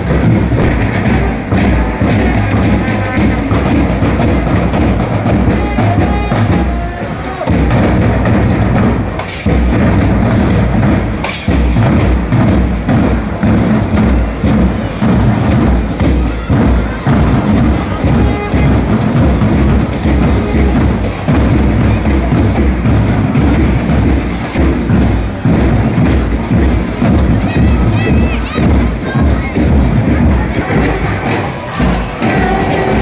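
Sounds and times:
bass drums beating march rhythm: 0:00.0 - 0:33.0
marching band music: 0:00.0 - 0:33.0.

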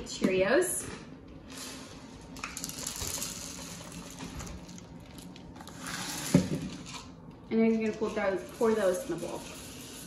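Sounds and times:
cereal pouring into plastic cup: 0:02.4 - 0:07.1, 0:08.4 - 0:10.0.

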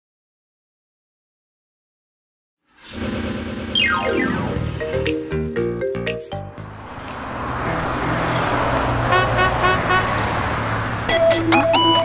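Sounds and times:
upbeat electronic music: 0:03.8 - 0:08.6, 0:11.1 - 0:12.0.

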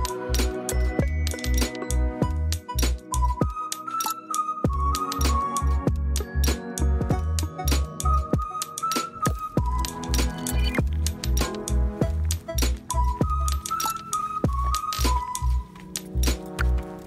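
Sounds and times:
clicking percussion: 0:00.0 - 0:17.0.

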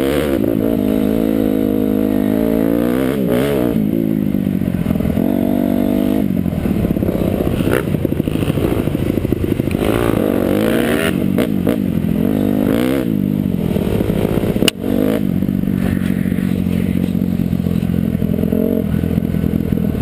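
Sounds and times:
dirt bike engine: 0:00.0 - 0:20.0.

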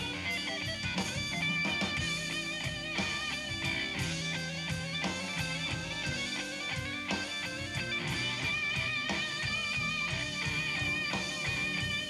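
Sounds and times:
blues band playing: 0:00.0 - 0:12.0
electric guitar solo: 0:00.0 - 0:12.0.

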